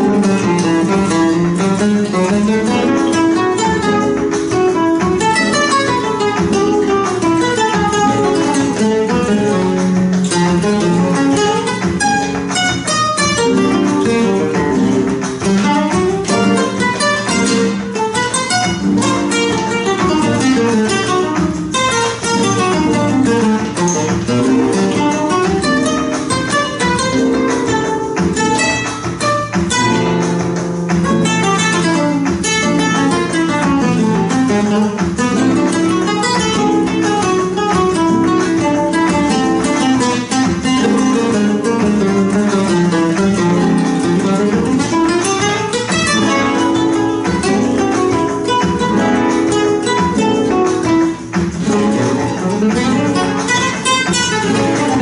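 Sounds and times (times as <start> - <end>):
two flamenco guitars playing: 0.0 - 55.0.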